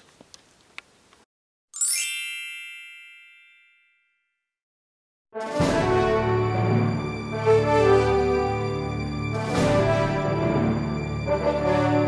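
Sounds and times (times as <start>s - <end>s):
sparkle chime cascade: 1.8s - 4.0s.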